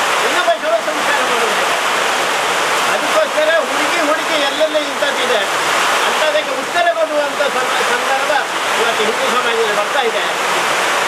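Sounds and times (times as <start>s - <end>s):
loud background hiss: 0.0s - 11.0s
man speaking: 0.2s - 1.7s, 2.9s - 10.4s.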